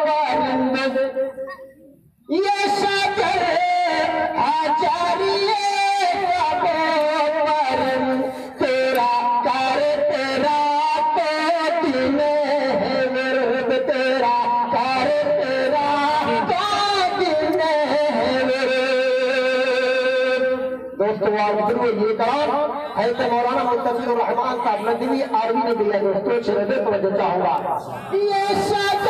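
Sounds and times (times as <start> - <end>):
man singing through loudspeaker: 0.0 - 1.6, 2.2 - 29.0.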